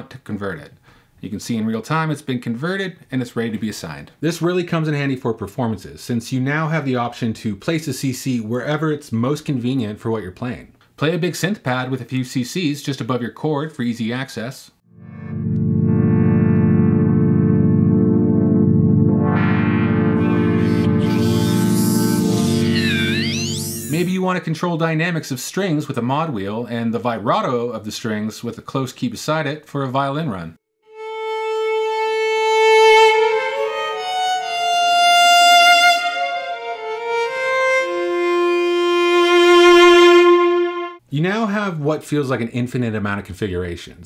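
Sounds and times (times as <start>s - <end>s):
synthesizer pad chord: 14.9s - 24.0s, 31.4s - 41.0s
solo violin held notes: 15.0s - 24.1s, 30.9s - 41.0s.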